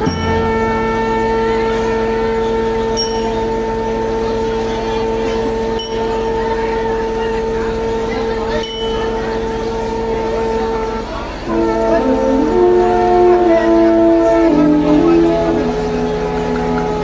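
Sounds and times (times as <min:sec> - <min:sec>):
brass section sustained note: 0:00.0 - 0:17.0.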